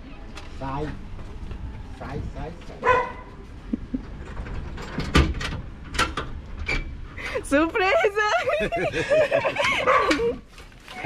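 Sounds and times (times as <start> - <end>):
dog barking: 2.8 - 3.4, 9.8 - 10.2.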